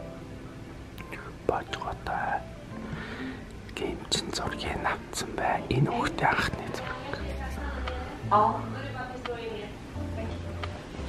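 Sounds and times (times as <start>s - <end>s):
faint music: 0.0s - 11.0s
quiet speech: 1.0s - 2.4s, 3.7s - 10.8s.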